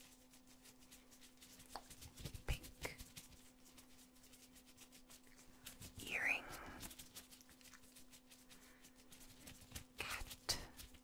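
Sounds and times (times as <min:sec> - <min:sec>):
latex gloves crinkling: 0:00.0 - 0:11.0.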